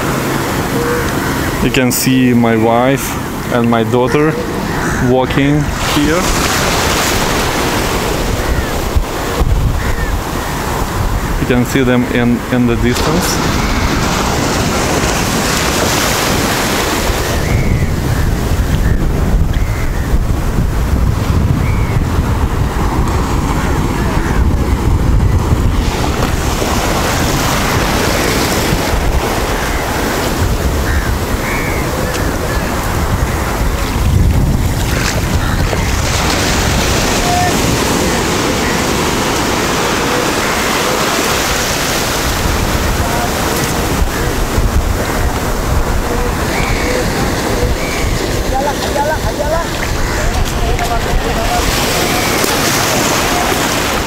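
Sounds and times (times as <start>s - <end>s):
wind buffeting microphone: 0.0s - 54.0s
small waves breaking: 4.3s - 11.4s, 12.8s - 17.4s, 22.3s - 54.0s.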